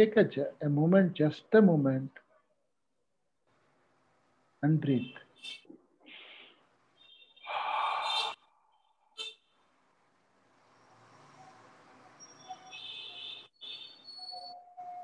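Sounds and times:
person breathing into microphone: 0:06.0 - 0:06.7, 0:07.5 - 0:08.5.

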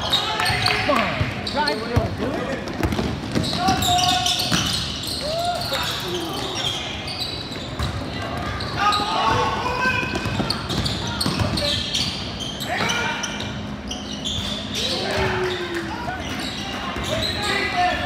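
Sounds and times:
basketball bouncing on court floor: 0:00.5 - 0:05.0, 0:07.6 - 0:08.5, 0:09.2 - 0:11.8.

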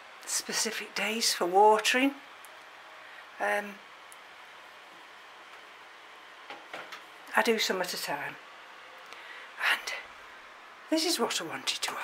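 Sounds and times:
room tone hiss: 0:00.0 - 0:12.0
soft breath: 0:02.8 - 0:03.4, 0:09.0 - 0:10.6.

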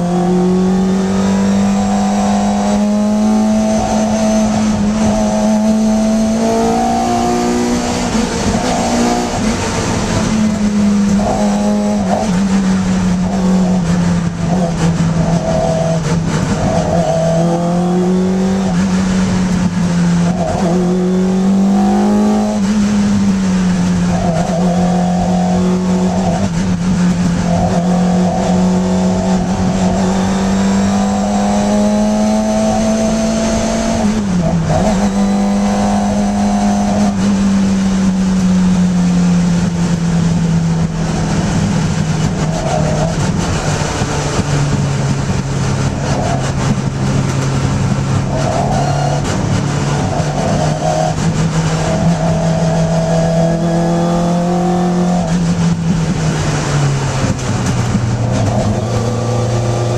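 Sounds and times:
racing car engine revving: 0:00.0 - 0:59.9.

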